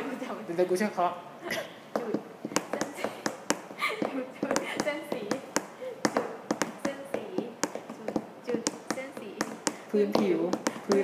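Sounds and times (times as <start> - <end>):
hands tapping a rhythm: 1.9 - 11.0.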